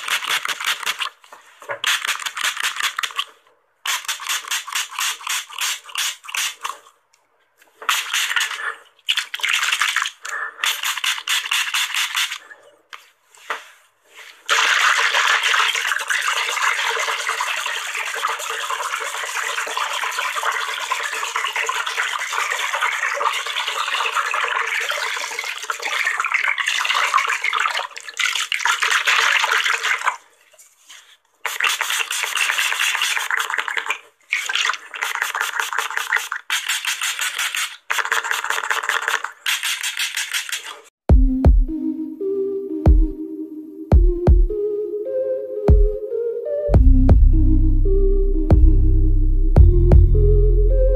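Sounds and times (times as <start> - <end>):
quick spray bottle spritzes: 0.0 - 1.2, 1.8 - 6.9, 7.8 - 12.5, 14.2 - 18.6, 31.4 - 40.9
spray bottle hissing: 1.8 - 3.2, 3.9 - 6.9, 7.8 - 8.7, 10.6 - 12.5, 31.4 - 40.9.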